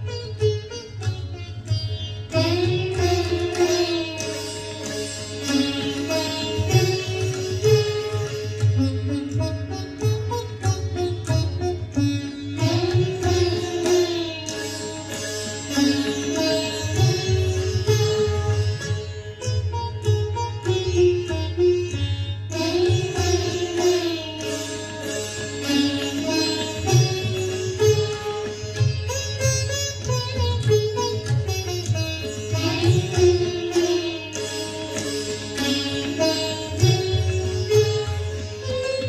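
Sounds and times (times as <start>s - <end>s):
sitars playing classical music: 0.0s - 39.0s
tabla drum strokes: 0.0s - 39.0s.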